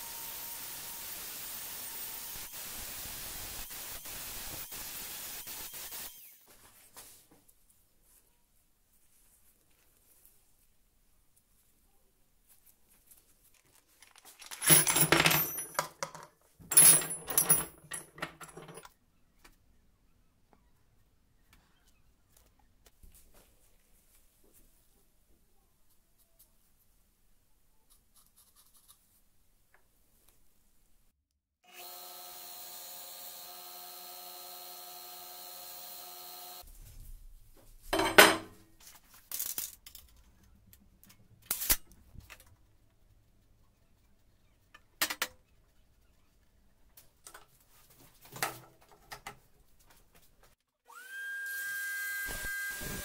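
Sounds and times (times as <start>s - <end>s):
drill bits clattering on tabletop: 14.1s - 18.9s, 37.9s - 38.6s
belt grinder motor humming: 31.7s - 36.6s.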